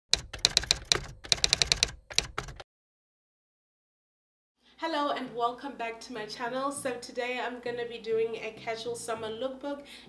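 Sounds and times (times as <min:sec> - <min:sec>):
typewriter key clacks: 0:00.1 - 0:02.6.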